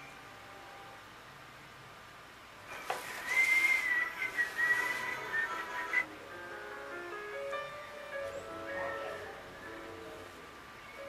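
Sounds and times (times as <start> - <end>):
high whistling tone: 2.7 - 6.1
soft musical notes: 4.0 - 11.0.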